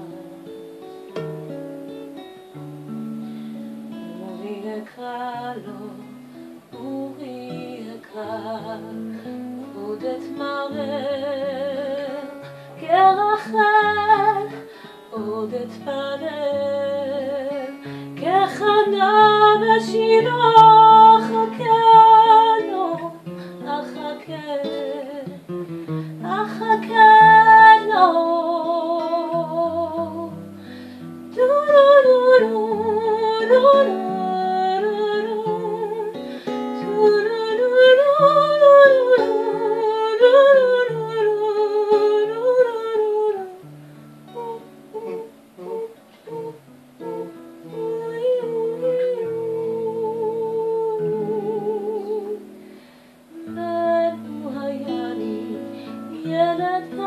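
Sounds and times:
acoustic guitar: 0.0s - 57.0s
woman singing with vibrato: 3.9s - 43.7s, 44.3s - 52.7s, 53.3s - 57.0s.

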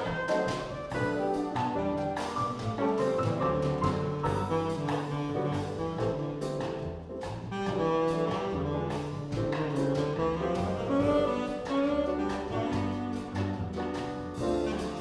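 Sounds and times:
drum kit with light cymbals: 0.0s - 15.0s
piano: 0.0s - 15.0s
saxophone melody: 0.0s - 15.0s
upright bass: 0.0s - 15.0s.

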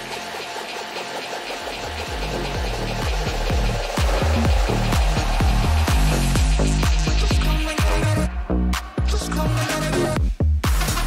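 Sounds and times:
electronic dance music: 0.0s - 11.0s
kick drum: 2.0s - 8.7s, 10.2s - 11.0s.

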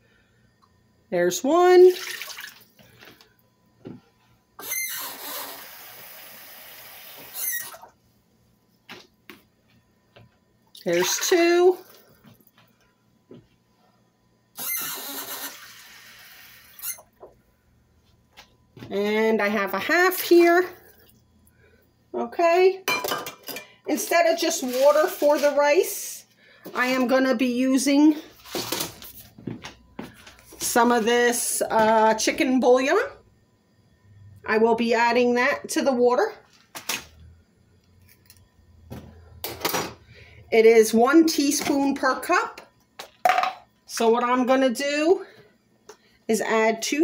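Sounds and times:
low steady hum: 0.0s - 4.6s, 7.7s - 47.0s.

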